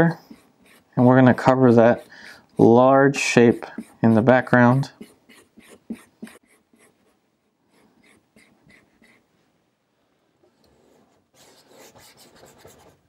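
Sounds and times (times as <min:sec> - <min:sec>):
brush rubbing on canvas: 0:00.1 - 0:07.2
paintbrush scrubbing on palette: 0:00.1 - 0:07.2.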